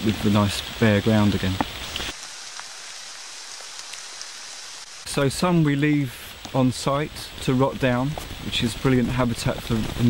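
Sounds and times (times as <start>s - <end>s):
light rain pattering: 0.0s - 10.0s.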